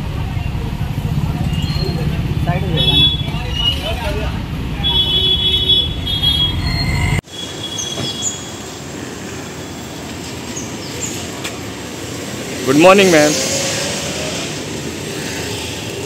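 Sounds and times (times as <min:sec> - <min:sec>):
low rumble of street noise: 0:00.0 - 0:16.0.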